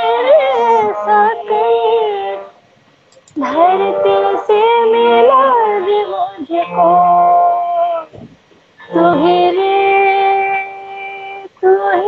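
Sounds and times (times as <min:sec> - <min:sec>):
woman singing solo: 0:03.4 - 0:07.2, 0:08.8 - 0:12.0.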